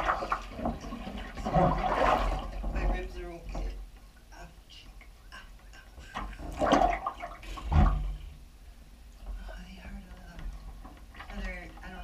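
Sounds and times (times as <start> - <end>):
bathwater splashing and sloshing: 0.0 - 4.0, 6.0 - 8.5, 9.3 - 12.0.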